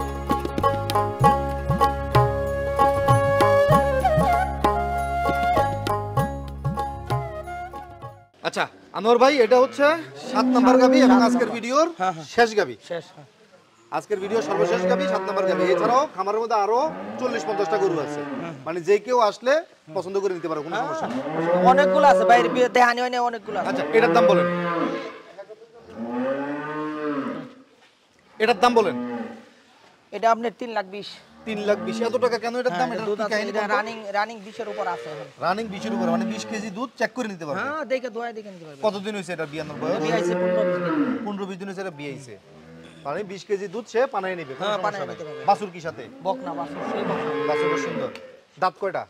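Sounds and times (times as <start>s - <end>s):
cow mooing: 9.4s - 11.6s, 14.3s - 16.0s, 16.9s - 18.6s, 20.6s - 22.7s, 23.5s - 25.3s, 25.9s - 27.6s, 34.7s - 36.6s, 39.8s - 41.3s, 44.4s - 48.4s.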